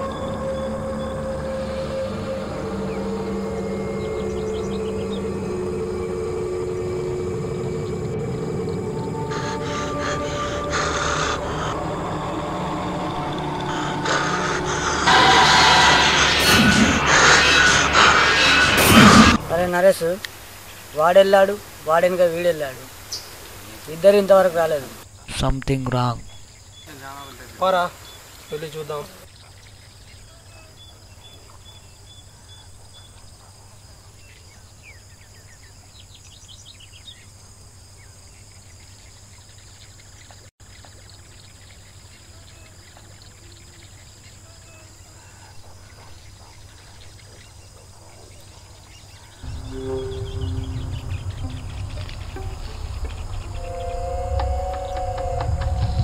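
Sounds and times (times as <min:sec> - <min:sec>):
faint bird chirps: 0:38.0 - 0:56.0.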